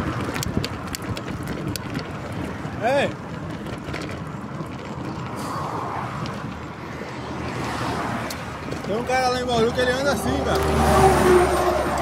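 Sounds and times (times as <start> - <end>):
bicycle road rumble: 0.0 - 12.0
passing motor traffic: 0.0 - 12.0
wind noise: 0.0 - 12.0.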